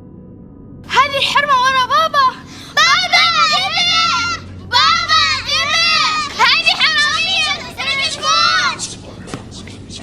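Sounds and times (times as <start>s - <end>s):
young girls talking: 0.9s - 8.8s.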